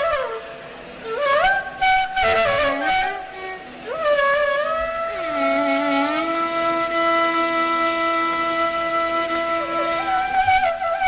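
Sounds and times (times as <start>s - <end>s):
bamboo flute long notes: 0.0s - 11.0s
lower melodic instrument: 0.0s - 11.0s.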